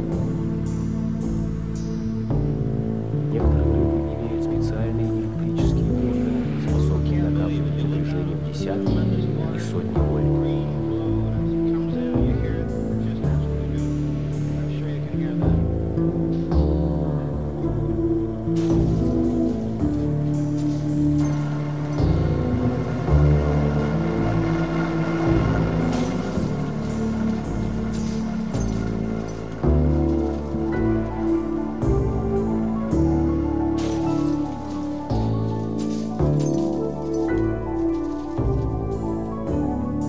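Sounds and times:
held synth chords: 0.0 - 40.0
hissing rain-like noise: 0.0 - 40.0.

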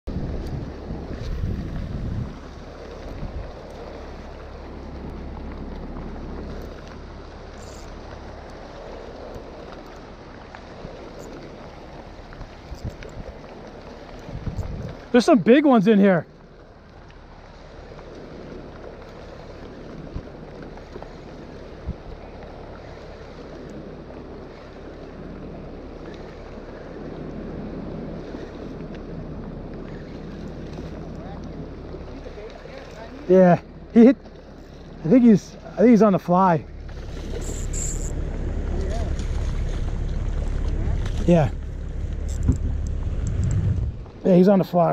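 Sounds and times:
wind on microphone: 0.0 - 15.3, 17.7 - 44.9
water around a boat: 0.0 - 44.9
boat motor idling: 0.1 - 15.8, 16.4 - 44.9.

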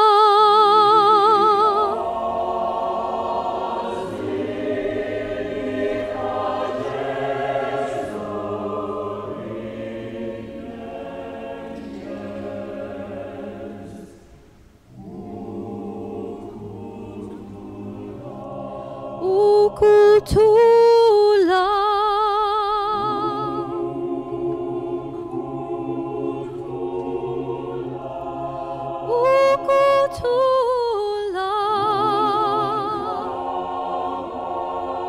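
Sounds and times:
church choir singing: 0.0 - 35.0.

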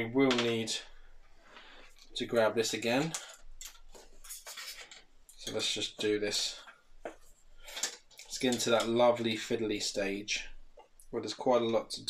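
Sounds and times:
plastic parts scraping and rustling: 2.8 - 6.8, 7.6 - 9.0.

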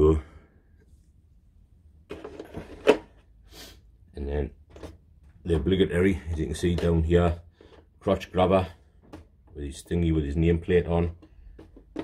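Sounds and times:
plastic rustling and knocking: 2.1 - 3.2, 4.6 - 7.9, 8.8 - 10.0, 10.8 - 12.0.

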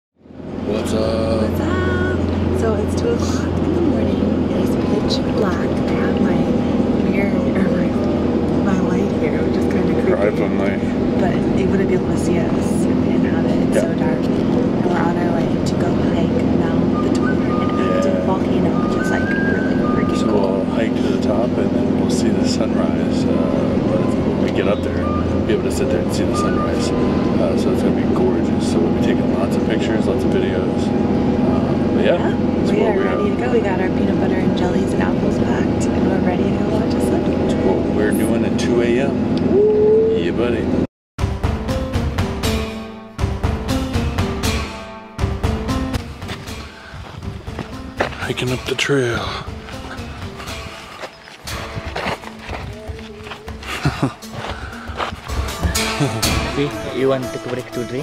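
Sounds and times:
vehicle engine drone: 0.2 - 58.0
indistinct voices: 0.6 - 40.9, 51.4 - 58.0
music: 1.4 - 38.8, 41.2 - 58.0.

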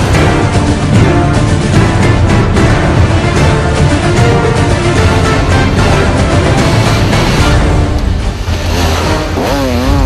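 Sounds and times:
loud background music: 0.0 - 10.0
dirt bike engine revving: 8.3 - 10.0.

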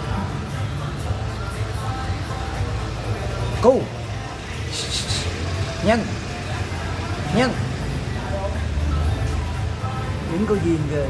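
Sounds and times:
street traffic rumble: 0.0 - 11.0
short hiss: 4.7 - 5.4.

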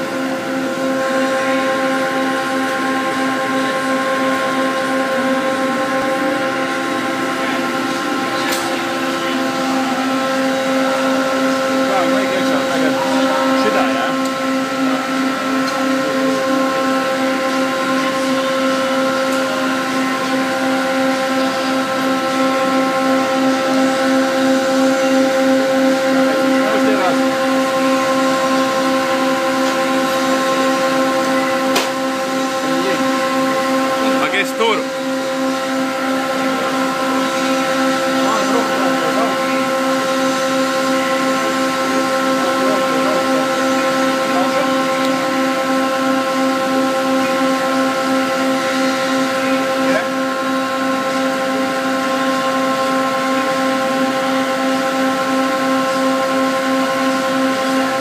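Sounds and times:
machine hum: 0.0 - 58.0.

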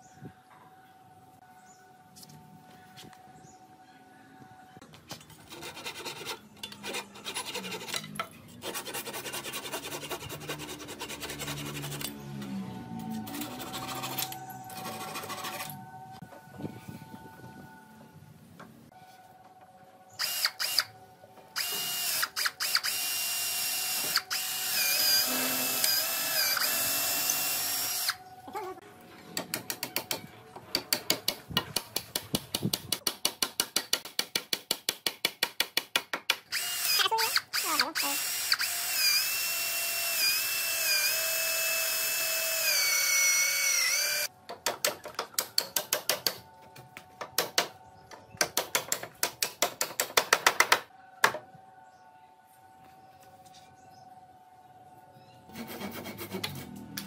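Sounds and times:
cordless drill boring through bamboo: 20.2 - 20.9, 21.6 - 28.2, 36.5 - 44.3.

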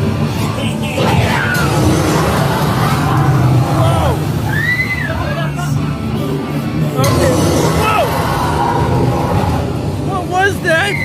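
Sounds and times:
rough growling noise: 0.0 - 4.6, 6.2 - 10.6
low rumble: 0.0 - 10.6.

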